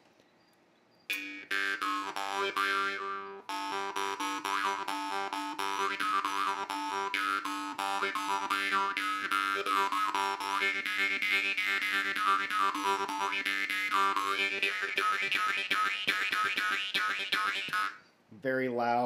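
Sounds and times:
jaw harp twanging: 1.1 - 18.0.

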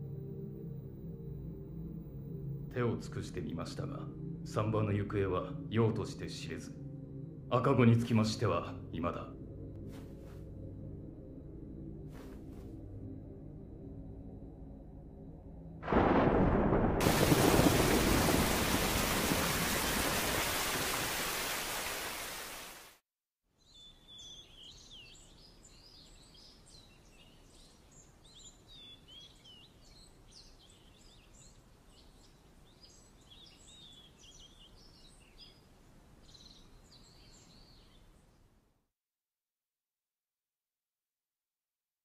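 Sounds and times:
thunderclap: 15.8 - 21.3
heavy rain: 15.9 - 23.0
birds chirping faintly: 23.6 - 38.6.

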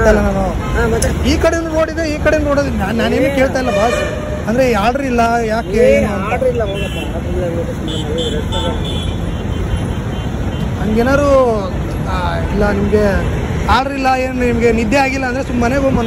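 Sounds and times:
road traffic: 0.0 - 16.0.

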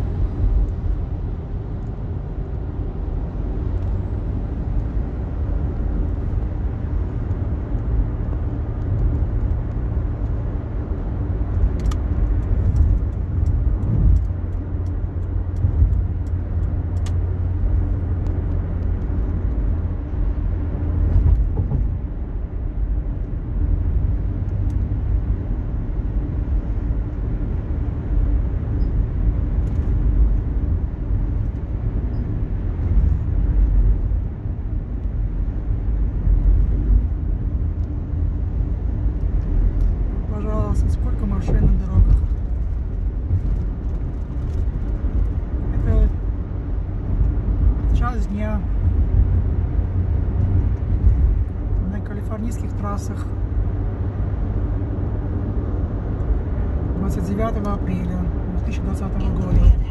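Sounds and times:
road and tyre rumble: 0.0 - 59.9.

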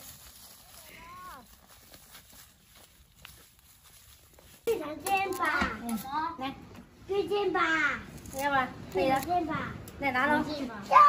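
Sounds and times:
footsteps on dirt path: 0.0 - 5.8.

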